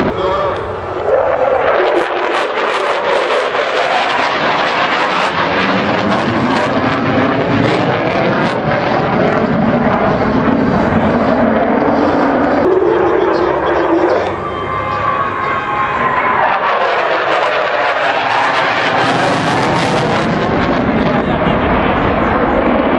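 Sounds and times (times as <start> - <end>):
loud jet engine noise: 0.0 - 22.9.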